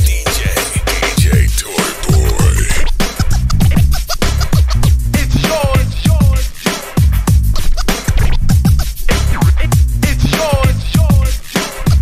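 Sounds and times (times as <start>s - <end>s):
hip hop beat: 0.0s - 2.9s
turntable scratching: 0.6s - 2.9s.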